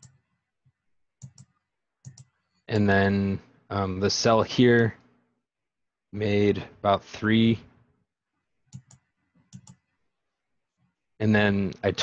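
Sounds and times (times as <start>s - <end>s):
computer mouse clicking: 1.2s - 2.9s, 8.7s - 9.8s.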